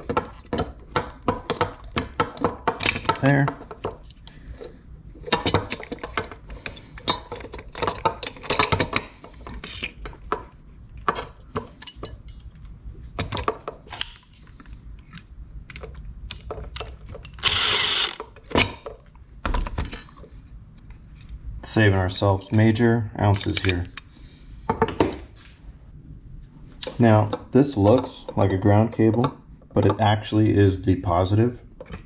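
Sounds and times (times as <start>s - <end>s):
small parts clicking and rattling: 5.2s - 18.9s.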